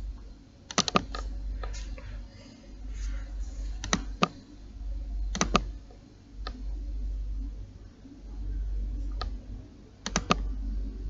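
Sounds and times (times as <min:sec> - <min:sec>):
laptop keyboard typing: 0:00.7 - 0:02.0, 0:03.8 - 0:04.4, 0:05.3 - 0:05.8, 0:10.0 - 0:10.6.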